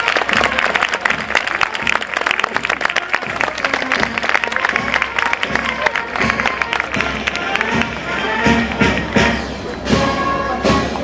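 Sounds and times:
band playing march music: 0:00.0 - 0:11.0
crowd voices: 0:00.0 - 0:11.0.

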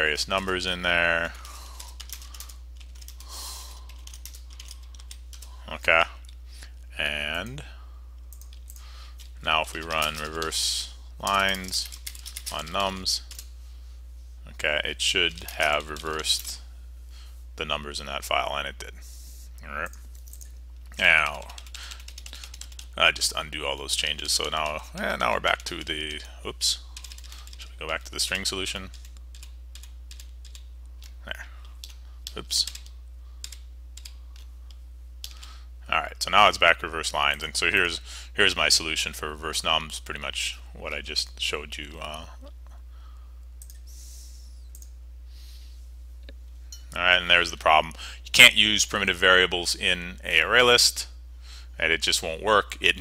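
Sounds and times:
steady low hum: 0:00.0 - 0:53.0
computer keyboard typing: 0:01.3 - 0:05.5, 0:08.3 - 0:10.6, 0:11.2 - 0:13.5, 0:19.8 - 0:23.0, 0:27.0 - 0:31.2, 0:31.8 - 0:34.5, 0:43.6 - 0:43.8.

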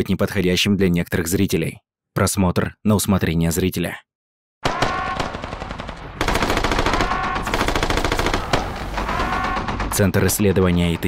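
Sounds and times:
rapid automatic gunfire: 0:04.6 - 0:11.0.

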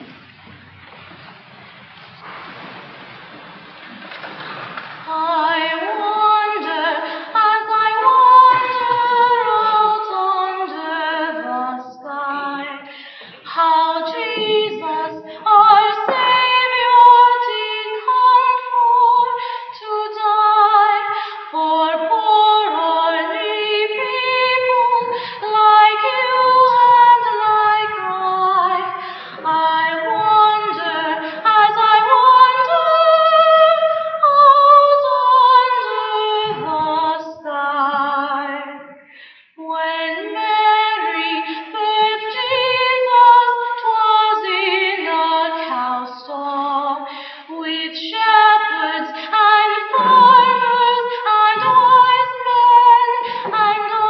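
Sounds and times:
children's choir singing: 0:05.3 - 0:11.9, 0:25.8 - 0:33.2, 0:35.6 - 0:39.1, 0:48.6 - 0:54.0.

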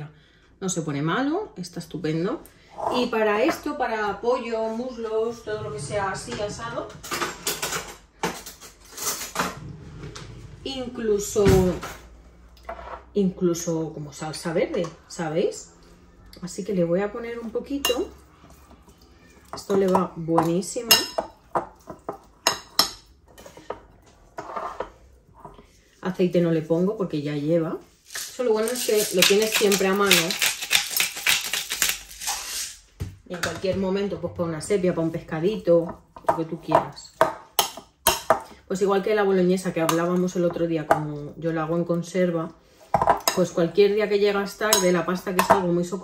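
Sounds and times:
kitchenware knocks and clinks: 0:06.9 - 0:09.6
spice grinder clicking and crunching: 0:28.1 - 0:32.7.

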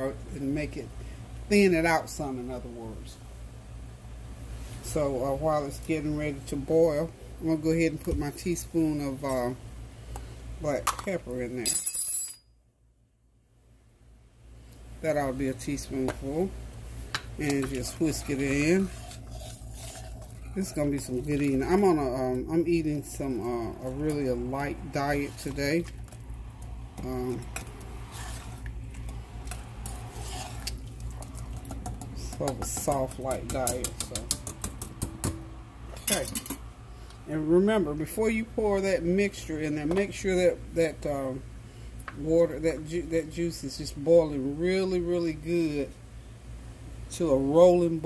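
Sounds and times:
whisk clicking against a pot: 0:27.5 - 0:35.4.

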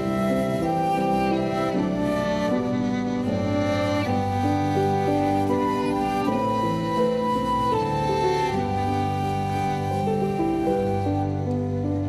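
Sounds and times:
flute: 0:00.0 - 0:12.0
violins: 0:00.0 - 0:12.0.

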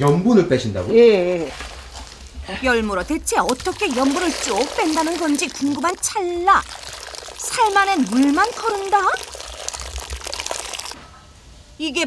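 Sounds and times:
water splashing through basket: 0:01.4 - 0:11.0.

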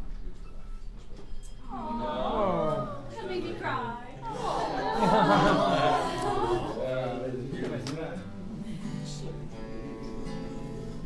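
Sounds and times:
low room murmur: 0:00.0 - 0:11.0.

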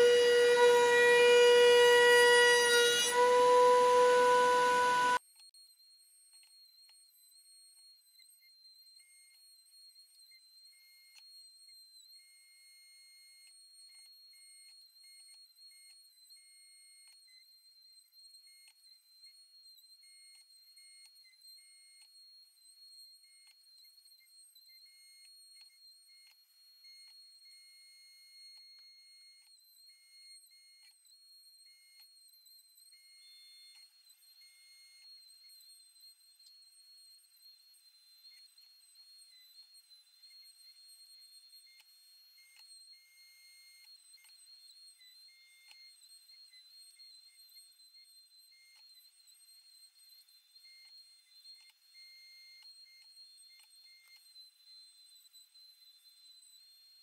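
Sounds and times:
faint high-pitched tone: 0:00.0 - 0:05.2.

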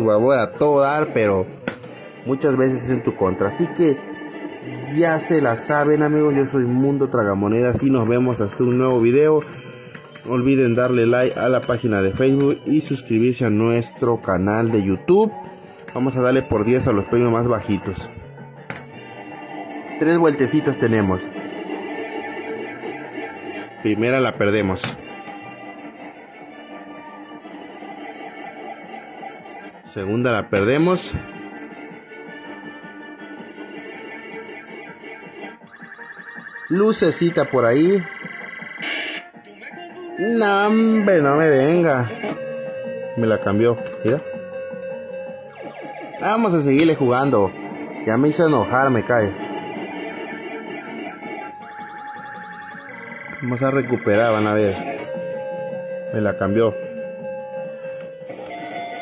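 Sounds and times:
slot machine electronic tune: 0:00.0 - 0:59.0.

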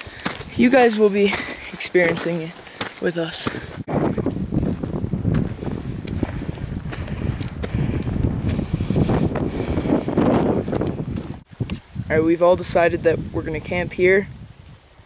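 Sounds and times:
wind buffeting microphone: 0:03.3 - 0:15.0.

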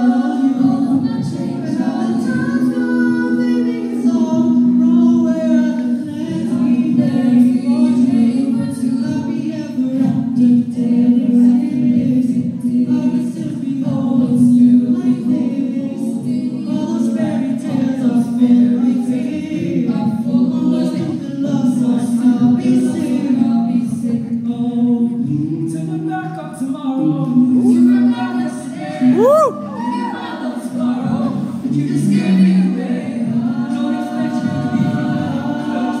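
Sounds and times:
a cappella group singing: 0:00.0 - 0:36.0.

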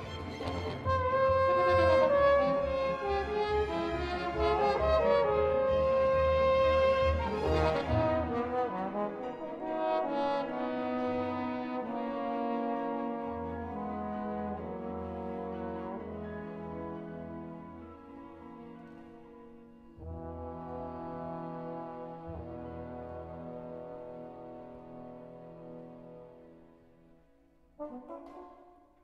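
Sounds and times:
trombone melody: 0:00.0 - 0:17.9, 0:20.0 - 0:26.7, 0:27.8 - 0:29.0
symphony orchestra playing: 0:00.0 - 0:29.0.

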